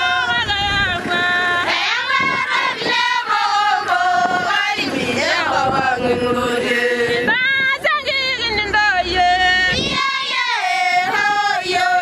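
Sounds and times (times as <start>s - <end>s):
women chanting together: 0.0s - 7.6s, 9.5s - 12.0s.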